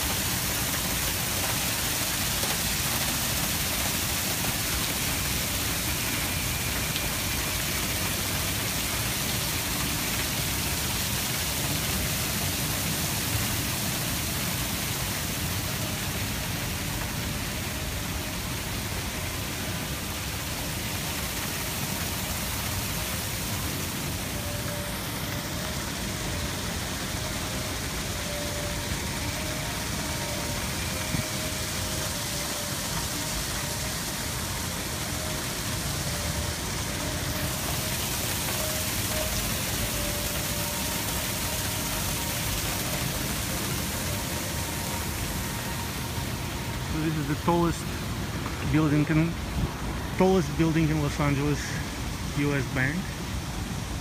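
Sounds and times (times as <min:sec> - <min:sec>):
fountain water rushing: 0:00.0 - 0:54.0.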